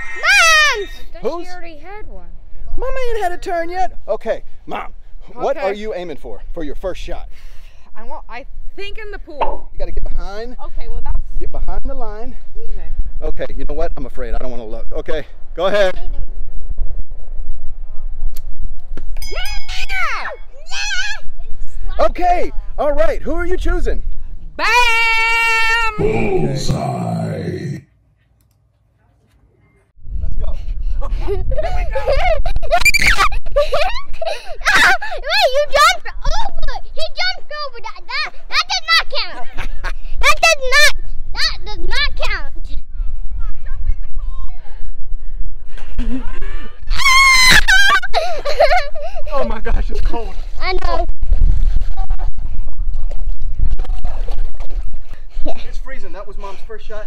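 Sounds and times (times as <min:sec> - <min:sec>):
wind rumbling on microphone: 0:06.2 - 0:26.0, 0:30.0 - 0:37.6, 0:39.4 - 0:56.7
people talking: 0:26.0 - 0:27.8.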